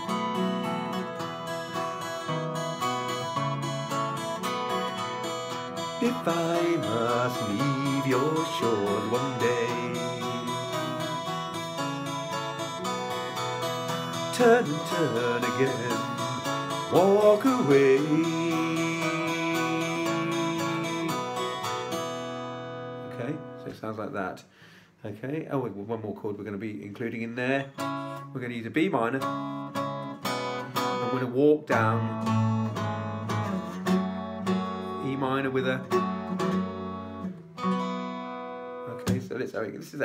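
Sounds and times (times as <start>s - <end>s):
fingerpicked acoustic guitar: 0.0s - 23.9s, 27.0s - 39.4s.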